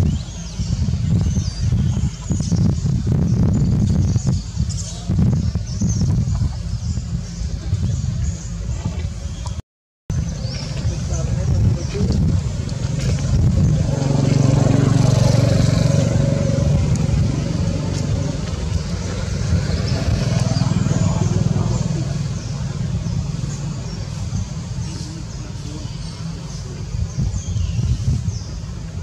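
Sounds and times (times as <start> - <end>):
vehicle engine humming: 4.7 - 29.0
people's voices: 10.3 - 27.4.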